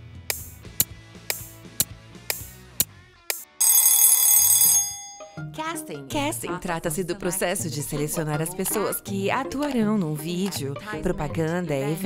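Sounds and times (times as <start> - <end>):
loud bell ringing: 3.6 - 5.4.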